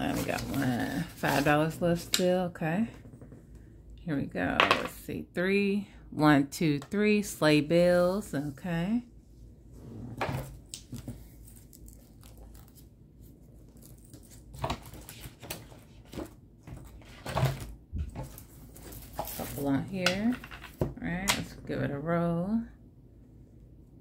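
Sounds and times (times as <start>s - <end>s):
person speaking: 0.0s - 2.9s, 4.0s - 9.1s, 19.4s - 22.6s.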